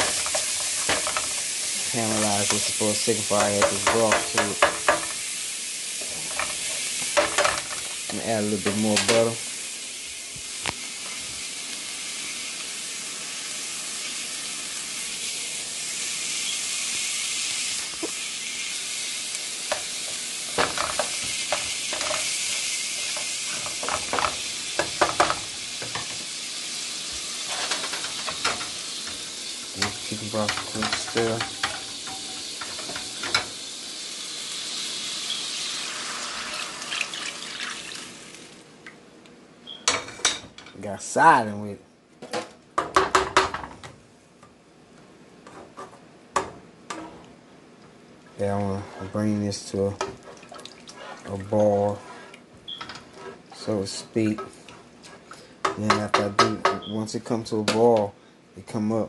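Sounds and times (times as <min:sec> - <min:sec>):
utensil scraping a frying pan: 0:00.0 - 0:05.3, 0:18.0 - 0:26.3, 0:27.4 - 0:33.6, 0:46.9 - 0:47.3, 0:48.7 - 0:49.4, 0:50.0 - 0:55.6
onion and garlic sizzling in a pan: 0:00.0 - 0:38.7.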